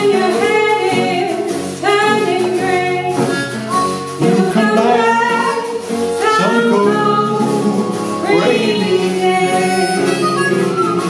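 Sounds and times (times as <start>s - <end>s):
acoustic guitar: 0.0s - 11.0s
hand drum: 0.0s - 11.0s
harmonica lead: 2.8s - 11.0s.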